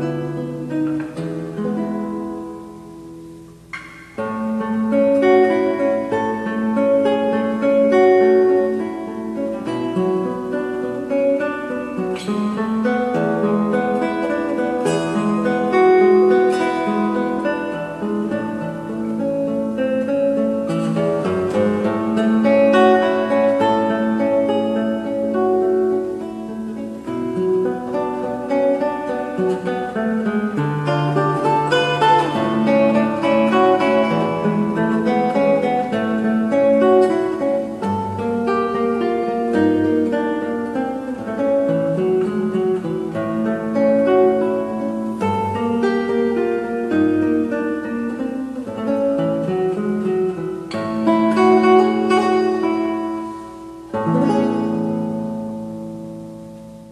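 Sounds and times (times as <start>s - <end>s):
classical guitar fingerstyle: 0.0s - 56.9s.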